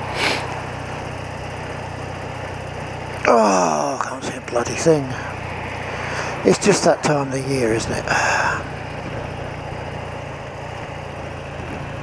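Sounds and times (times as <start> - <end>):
motorcycle engine running: 0.0 - 12.0
person sniffing: 0.1 - 0.6
person sighing or groaning: 3.2 - 4.0.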